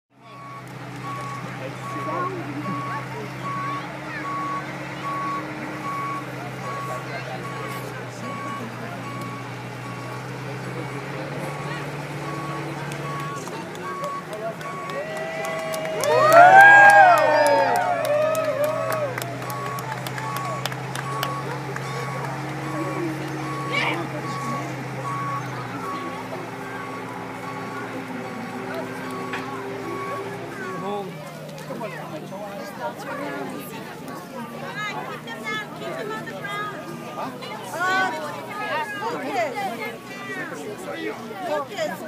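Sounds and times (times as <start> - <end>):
low engine hum: 0.1 - 42.0
warning beeper beeping: 0.3 - 15.0, 19.4 - 31.0.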